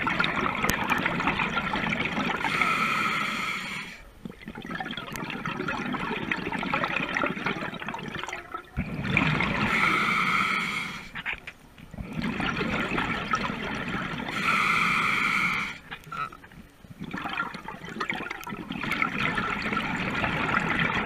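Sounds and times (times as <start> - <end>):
exhaled bubbles gurgling: 0.0 - 21.0
diver breathing through regulator: 2.4 - 4.0, 9.5 - 11.2, 14.3 - 15.9.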